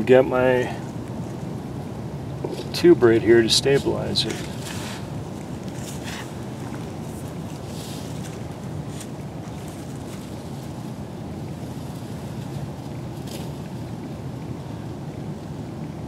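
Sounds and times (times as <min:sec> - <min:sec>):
wind noise on microphone: 0:00.0 - 0:16.0
faint rustles: 0:02.4 - 0:14.1.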